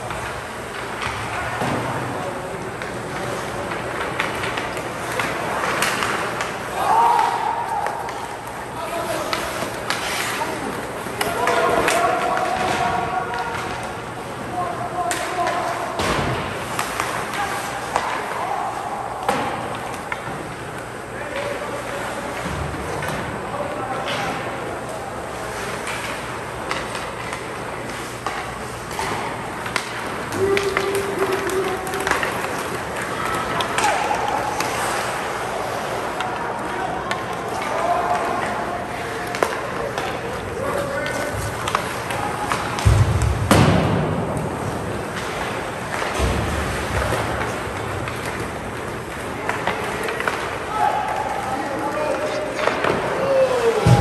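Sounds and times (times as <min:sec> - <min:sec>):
skate blades on ice: 0:00.0 - 0:23.0, 0:24.3 - 0:54.0
hockey sticks and puck clacking: 0:00.0 - 0:54.0
voices in a large hall: 0:00.0 - 0:54.0.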